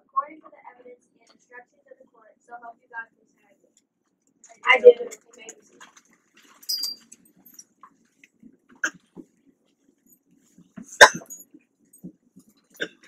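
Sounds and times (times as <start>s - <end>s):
short high squeak: 6.7s - 7.0s.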